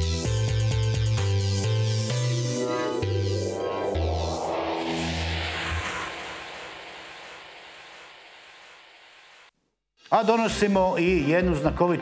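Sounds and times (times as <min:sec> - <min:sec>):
hissing whoosh: 0:02.0 - 0:09.5.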